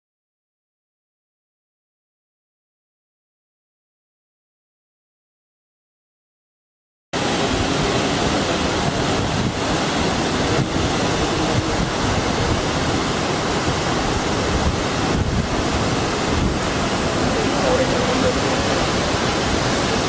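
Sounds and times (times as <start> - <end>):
waterfall roaring: 7.2 - 20.0.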